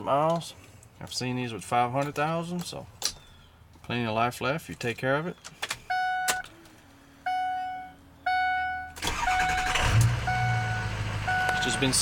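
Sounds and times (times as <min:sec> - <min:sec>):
door-ajar warning chime: 0:07.3 - 0:12.0
diesel engine cranking and idling: 0:08.2 - 0:12.0.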